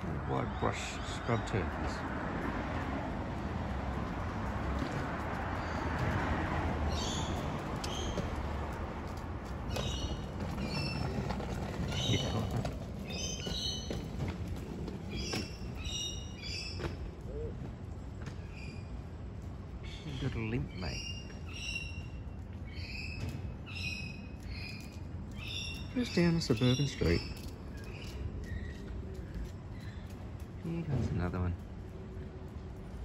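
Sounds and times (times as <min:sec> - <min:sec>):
small birds chirping: 0:00.0 - 0:02.1, 0:06.8 - 0:31.7
rushing street noise: 0:00.0 - 0:33.0.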